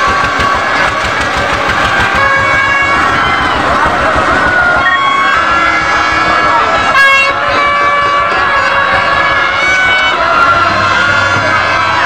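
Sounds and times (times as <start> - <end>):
crowd: 0.0 - 12.0
engine throbbing: 0.0 - 12.0.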